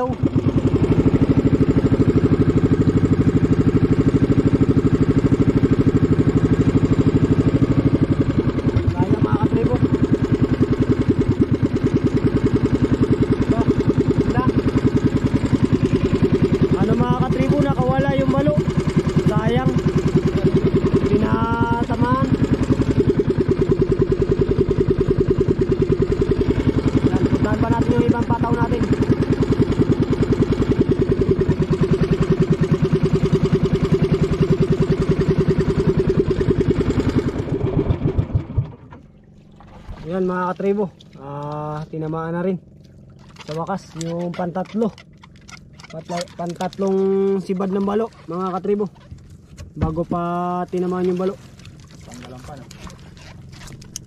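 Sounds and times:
boat engine running: 0.0 - 54.0.

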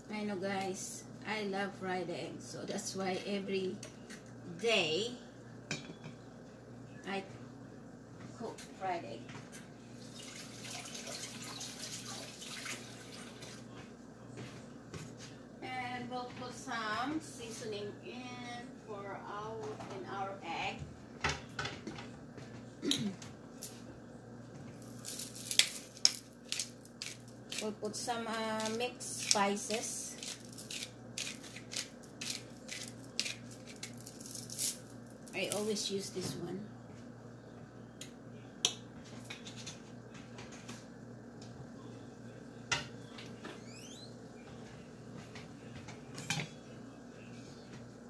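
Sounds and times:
crackles and pops of frying: 24.7 - 35.7
spice grinder grinding: 24.8 - 35.6.

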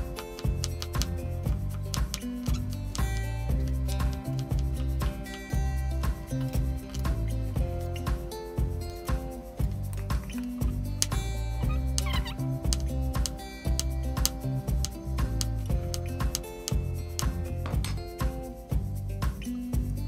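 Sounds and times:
background music with bass line: 0.0 - 20.0.

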